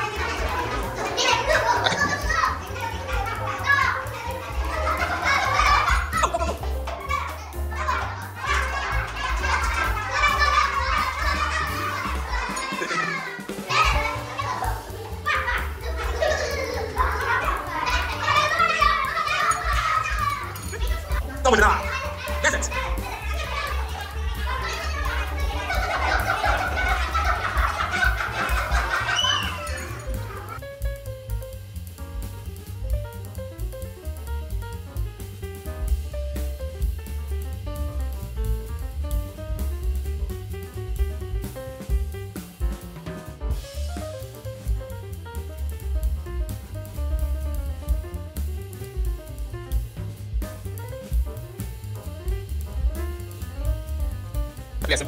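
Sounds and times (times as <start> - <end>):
young children chattering: 0.0 - 30.6
background music with low beat: 0.0 - 55.0.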